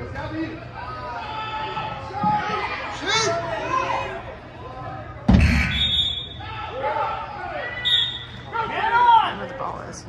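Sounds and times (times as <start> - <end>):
voices shouting in arena: 0.6 - 9.4.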